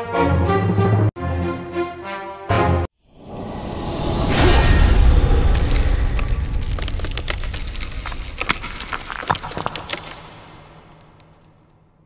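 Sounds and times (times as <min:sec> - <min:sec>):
low rumble: 0:03.1 - 0:09.2
concrete debris clattering on floor: 0:05.4 - 0:11.8.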